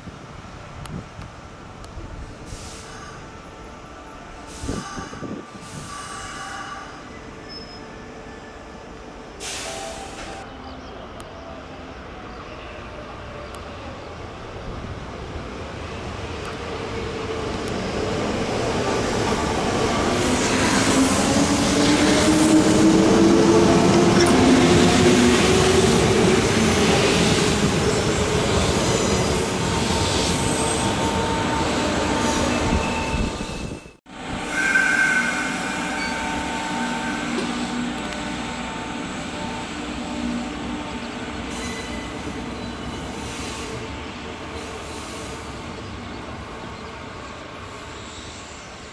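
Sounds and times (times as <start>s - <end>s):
standing train hum: 0.0s - 48.9s.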